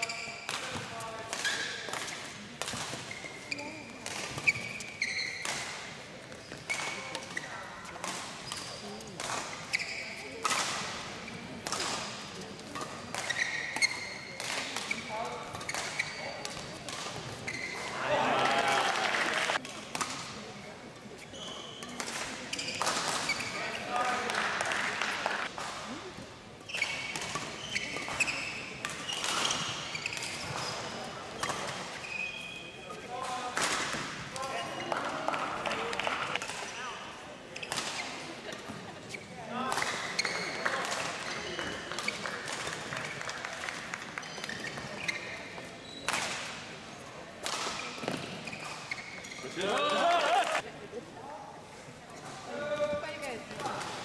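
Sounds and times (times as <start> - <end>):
shoes squeaking on court floor: 0.0 - 19.6, 20.5 - 33.4, 34.0 - 43.4, 44.2 - 50.6
rackets striking shuttlecock: 11.6 - 17.6
voices: 17.7 - 19.6, 49.4 - 50.9.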